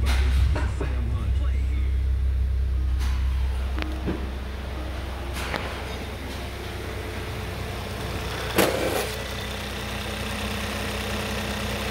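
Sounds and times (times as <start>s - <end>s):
car engine starting and idling: 0.0s - 11.9s.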